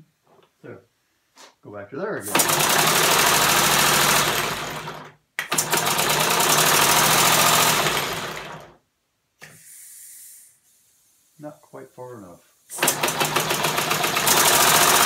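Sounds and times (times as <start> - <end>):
faint hiss of air: 0.0 - 1.8, 9.3 - 12.7.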